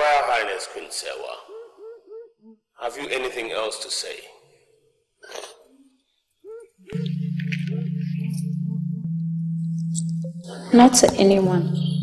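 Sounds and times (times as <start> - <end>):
synthesizer drone: 6.5 - 12.0.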